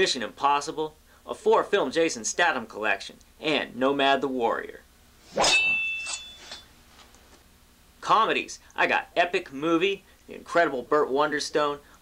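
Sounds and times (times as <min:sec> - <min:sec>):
metallic clang with ringing: 0:05.4 - 0:06.7.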